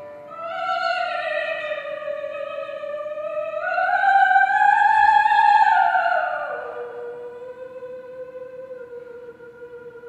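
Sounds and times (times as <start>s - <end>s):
operatic soprano singing: 0.0s - 10.0s.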